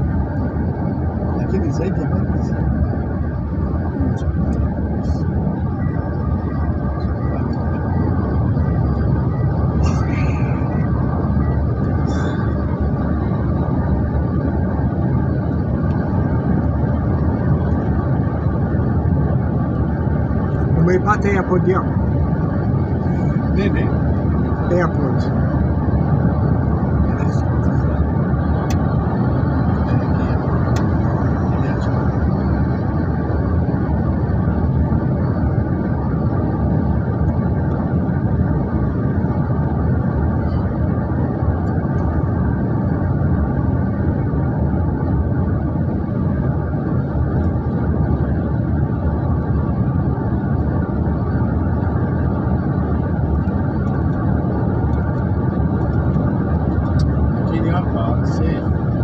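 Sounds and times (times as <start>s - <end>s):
road and engine noise inside car: 0.0s - 59.0s.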